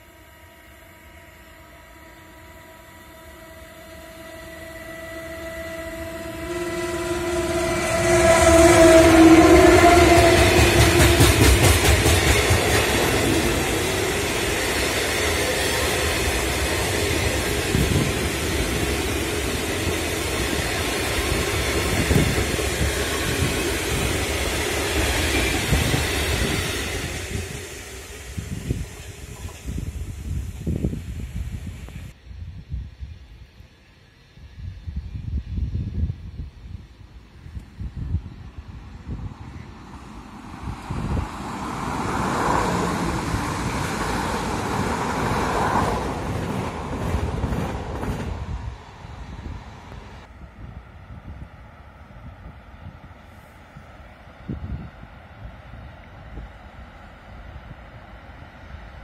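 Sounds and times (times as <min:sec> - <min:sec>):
train horn: 0:00.0 - 0:29.5
train wagons clattering past: 0:07.9 - 0:30.2.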